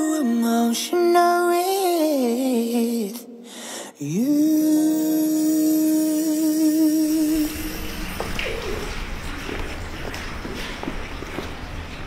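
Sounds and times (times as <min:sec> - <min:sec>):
background hiss: 0:03.4 - 0:12.0.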